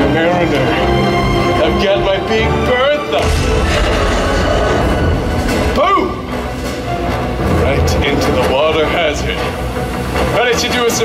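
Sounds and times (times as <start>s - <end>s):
dramatic music: 0.0s - 11.0s
dense rushing noise: 3.2s - 11.0s.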